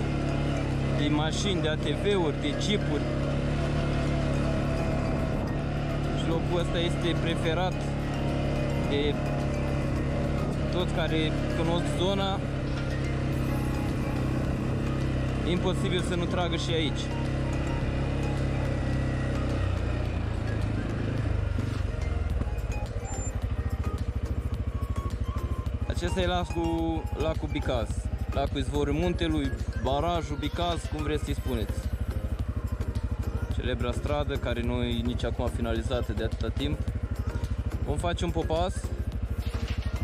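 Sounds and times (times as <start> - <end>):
atv engine running: 0.0 - 40.0.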